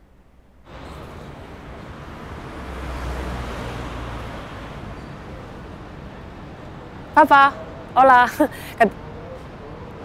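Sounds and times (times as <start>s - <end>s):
city street traffic: 0.0s - 10.0s
vehicle passing: 0.6s - 6.8s.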